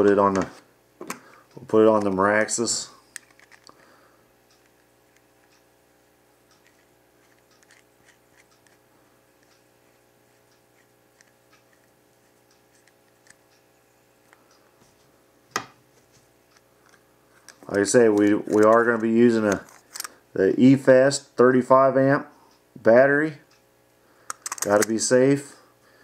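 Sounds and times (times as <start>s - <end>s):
small metallic clicks and scrapes: 3.2s - 3.8s, 6.5s - 8.8s, 9.4s - 13.6s, 16.5s - 20.2s, 24.3s - 25.0s.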